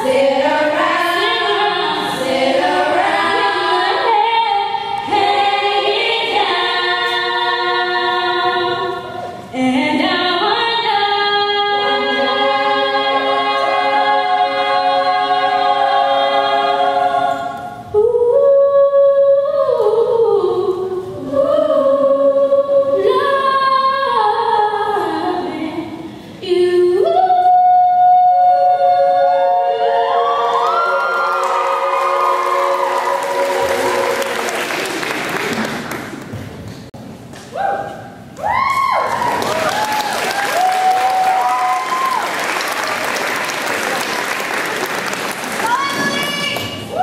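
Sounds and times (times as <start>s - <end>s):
female a cappella singing: 0.0s - 34.5s.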